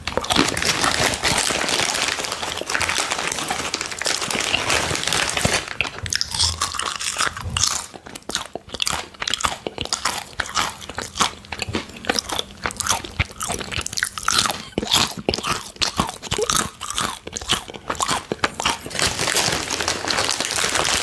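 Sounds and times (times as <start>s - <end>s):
crunching and chewing chips: 0.0s - 21.0s.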